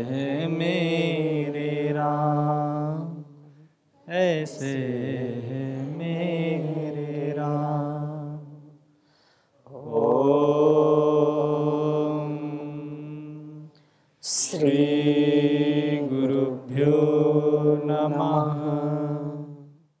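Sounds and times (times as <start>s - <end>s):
person chanting a mantra: 0.0s - 8.7s, 9.7s - 19.8s.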